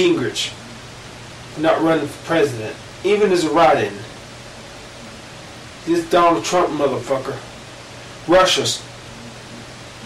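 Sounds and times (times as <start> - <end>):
man speaking: 0.0 - 0.6, 1.5 - 4.1, 5.8 - 7.5, 8.2 - 8.9
faint low hum: 0.0 - 10.0
steady background hiss: 0.0 - 10.0.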